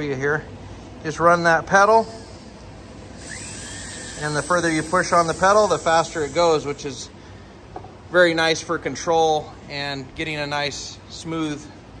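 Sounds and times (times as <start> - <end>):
rotary tool whirring: 1.8 - 6.9.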